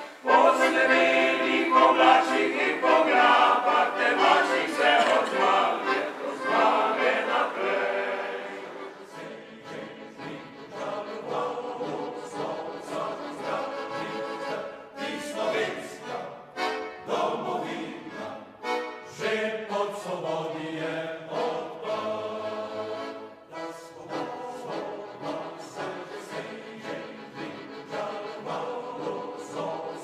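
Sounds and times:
accordion: 0:00.0 - 0:30.0
male choir singing: 0:00.0 - 0:30.0.

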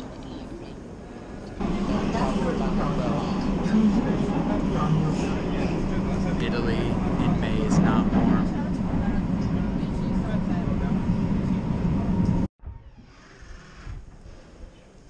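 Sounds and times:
faint background murmur: 0:00.0 - 0:12.5
metro train rumble: 0:00.0 - 0:12.5.

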